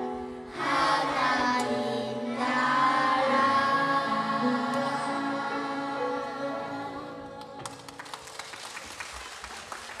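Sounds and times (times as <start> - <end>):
audience applause: 7.6 - 10.0.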